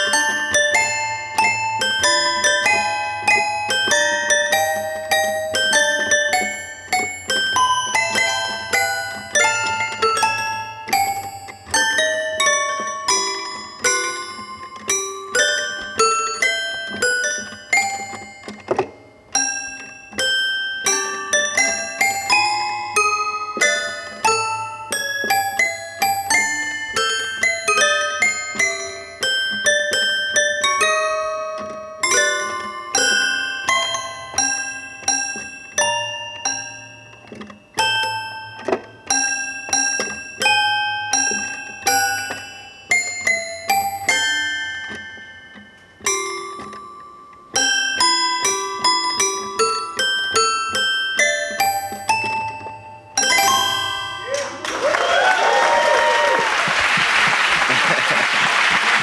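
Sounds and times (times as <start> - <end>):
toy piano notes: 0.0 - 56.4.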